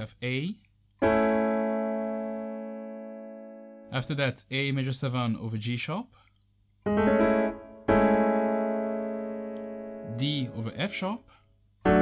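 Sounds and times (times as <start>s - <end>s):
piano chord: 1.0s - 4.1s, 6.9s - 11.2s.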